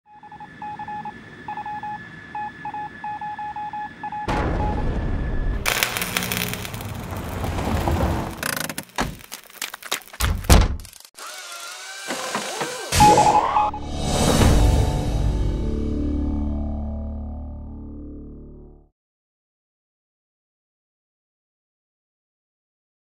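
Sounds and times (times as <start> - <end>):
loud rushing noise: 5.6 - 8.4.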